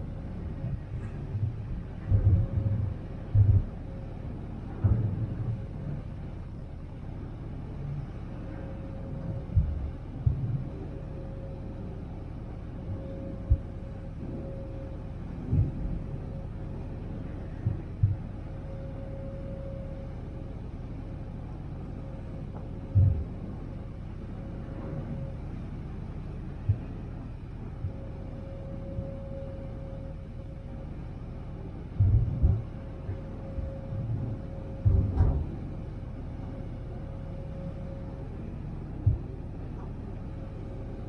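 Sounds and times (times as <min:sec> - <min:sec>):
ferry engines rumbling: 0:00.0 - 0:41.0
short low thumps: 0:01.3 - 0:03.8, 0:22.9 - 0:23.3, 0:32.0 - 0:32.8, 0:34.8 - 0:35.6.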